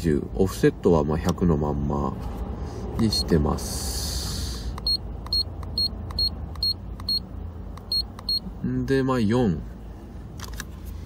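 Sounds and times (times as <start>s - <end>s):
low steady rumble: 0.0s - 11.0s
short high electronic beeps: 7.8s - 8.5s.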